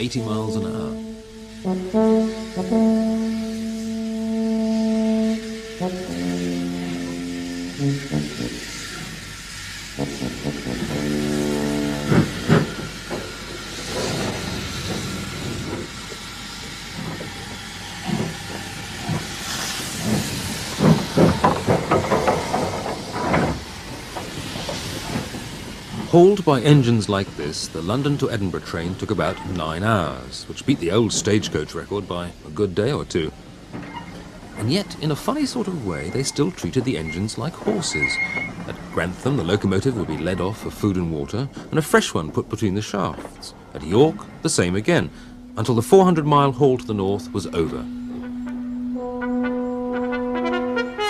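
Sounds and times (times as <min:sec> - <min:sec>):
steam hiss: 0:00.0 - 0:49.1
steam locomotive exhaust beats: 0:00.0 - 0:51.0
music with held notes: 0:00.9 - 0:08.8, 0:46.6 - 0:51.0.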